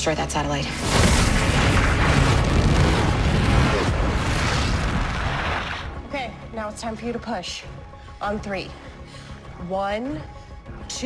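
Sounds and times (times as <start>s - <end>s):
dramatic score music: 0.0s - 11.0s
loud rush of noise: 0.9s - 5.9s
long deep rumble: 0.9s - 6.0s.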